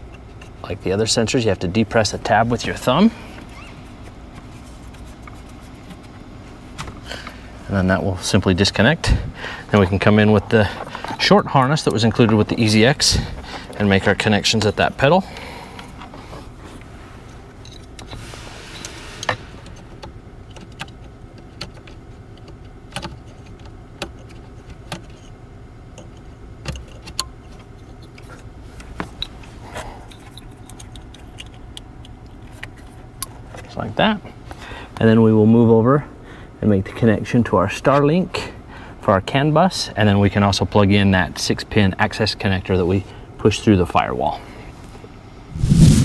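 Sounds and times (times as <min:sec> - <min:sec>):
low background hum: 0:00.0 - 0:46.0.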